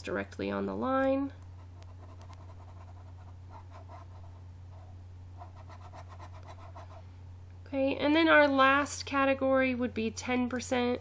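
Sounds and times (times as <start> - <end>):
steady low hum: 0.0 - 11.0
stylus scribbling on tablet: 1.6 - 7.0.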